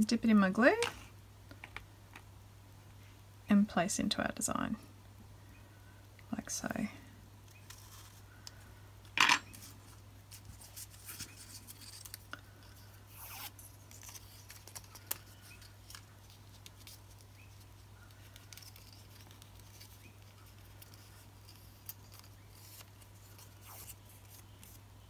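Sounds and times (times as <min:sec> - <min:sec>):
paper clicks and rustles: 0:09.5 - 0:12.8, 0:13.5 - 0:24.8.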